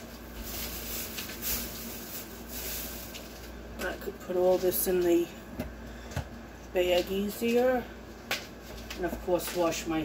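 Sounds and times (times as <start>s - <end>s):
plastic bag rustling: 0.0s - 5.3s.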